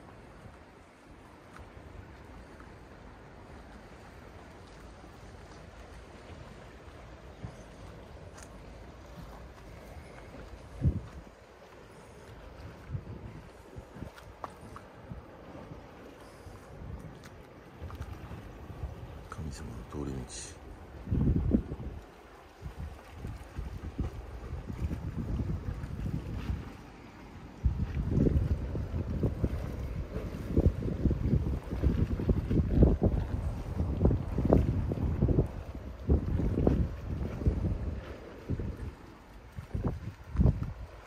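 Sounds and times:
wind buffeting microphone: 5.3 - 41.0.

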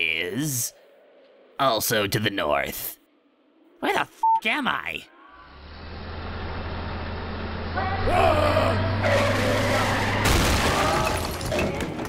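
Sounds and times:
bus engine drone: 5.1 - 11.3
tyres squealing: 7.8 - 11.9.

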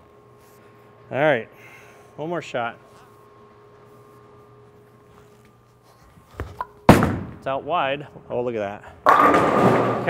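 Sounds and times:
faint steady hum: 0.0 - 10.0
bowling ball rolling: 9.0 - 10.0
bowling ball thud on lane: 9.0 - 10.0.

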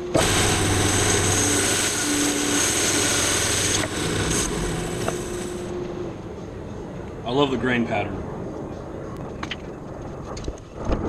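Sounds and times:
bandsaw cutting log: 0.0 - 5.7
saw running: 0.0 - 5.7.

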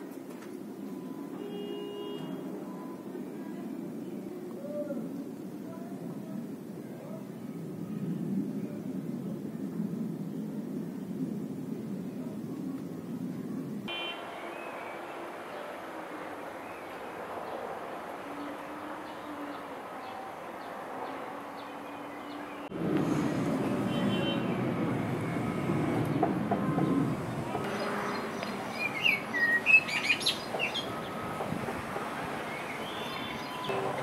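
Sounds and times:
outdoor background hiss: 0.0 - 34.0
songbird chirping: 13.9 - 22.7, 23.6 - 34.0.

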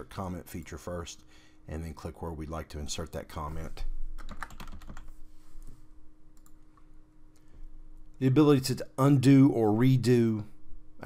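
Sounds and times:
computer keyboard typing: 4.2 - 5.1.

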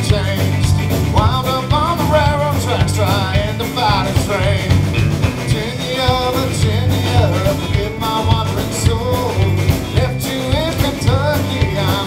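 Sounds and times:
electric bass: 0.0 - 12.0
electric guitars: 0.0 - 12.0
man singing lead vocal: 0.0 - 12.0.

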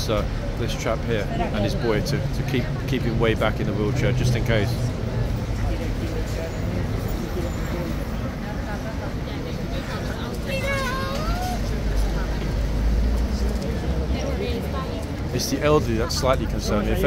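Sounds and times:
people chattering: 0.0 - 17.0
road traffic rumble: 0.0 - 17.0.

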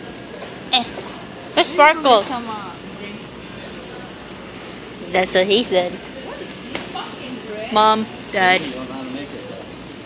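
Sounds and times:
store background noise: 0.0 - 10.0.

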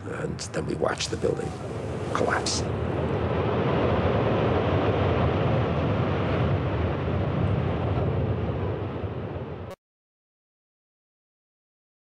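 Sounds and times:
outdoor rumble and hiss: 0.0 - 9.7.

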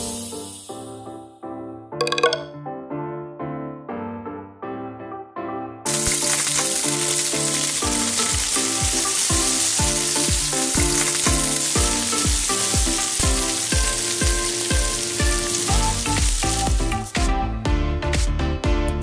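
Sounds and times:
food sizzling in hot oil: 5.9 - 17.2
background music with steady beat: 7.8 - 19.0.

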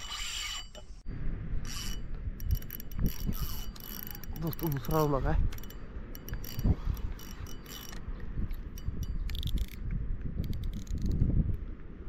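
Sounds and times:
wind rumble on microphone: 1.1 - 12.0
fishing reel clicking: 1.7 - 9.8, 10.4 - 11.2.

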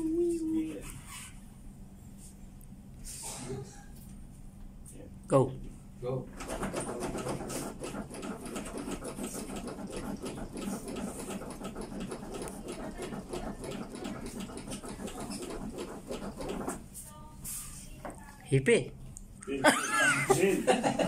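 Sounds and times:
clicks and knocks of cpr manikins: 6.4 - 16.8.

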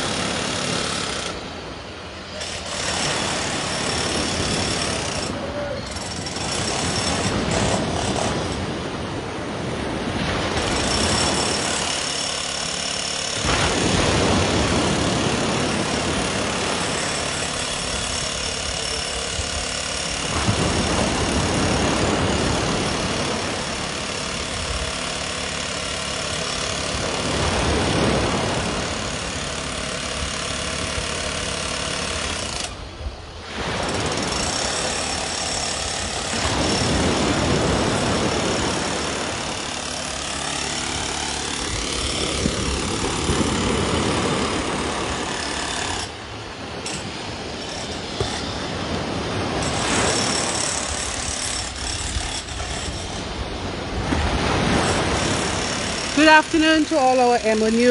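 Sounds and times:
surf on pebble beach: 0.0 - 57.9
motor-like hum: 6.6 - 57.9.

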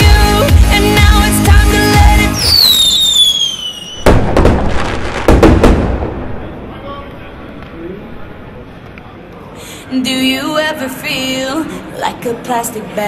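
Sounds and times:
dance music: 0.0 - 2.4
falling whistle: 2.3 - 4.2
explosion bangs and crackles: 4.0 - 6.8.

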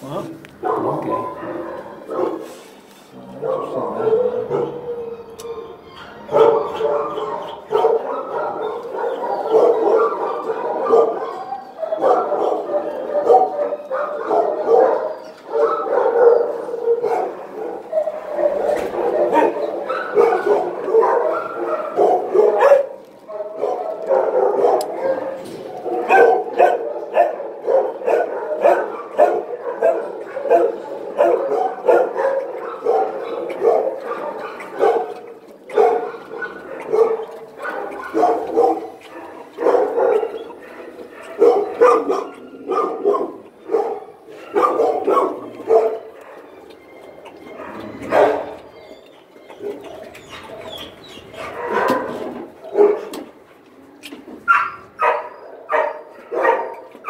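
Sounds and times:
dogs barking: 0.0 - 53.5, 54.4 - 57.0.

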